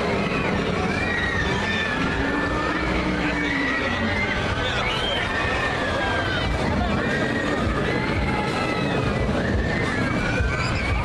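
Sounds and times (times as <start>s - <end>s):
busy crowd: 0.0s - 11.0s.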